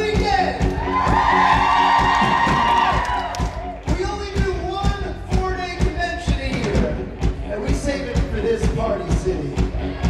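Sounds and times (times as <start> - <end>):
live band music: 0.0 - 10.0
steady drumbeat: 0.0 - 10.0
crowd cheering: 0.4 - 4.7, 9.5 - 10.0.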